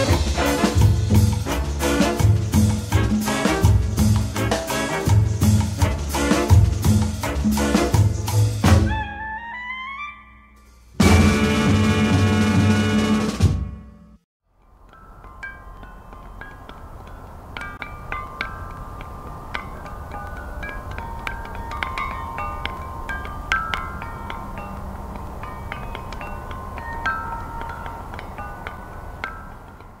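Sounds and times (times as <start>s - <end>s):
chimes ringing: 14.6s - 30.0s.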